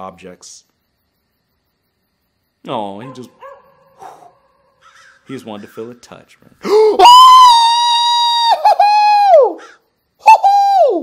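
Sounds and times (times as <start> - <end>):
man's falsetto cry of fright: 6.7 - 11.0.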